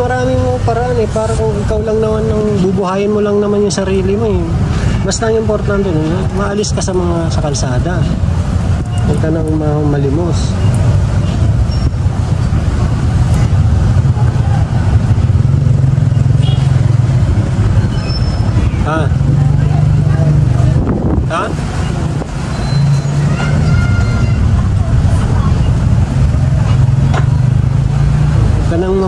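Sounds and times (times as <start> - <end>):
vehicle engine rumbling: 0.0 - 29.0
faint voices: 18.6 - 27.0.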